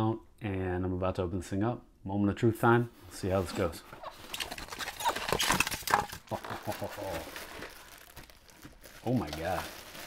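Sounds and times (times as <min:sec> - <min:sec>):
plastic bag crinkling: 0:04.1 - 0:10.0.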